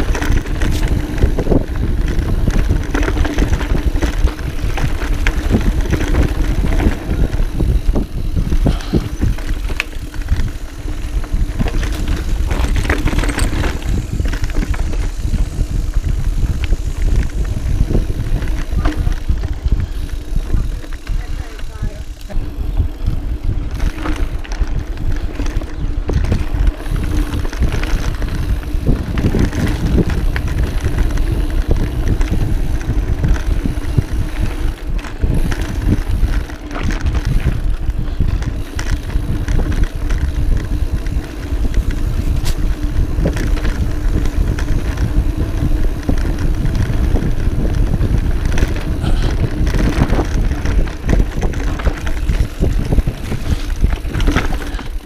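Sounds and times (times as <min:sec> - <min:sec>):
bike knocks and rattles: 0:00.0 - 0:55.0
tyres rumbling over dirt: 0:00.0 - 0:55.0
wind on microphone: 0:00.0 - 0:55.0.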